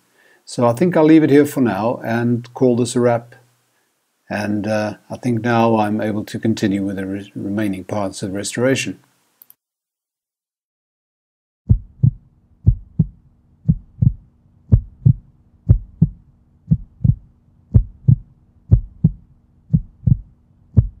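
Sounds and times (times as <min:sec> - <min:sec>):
faint low hum: 0:11.7 - 0:21.0
heartbeat thumps: 0:11.7 - 0:21.0.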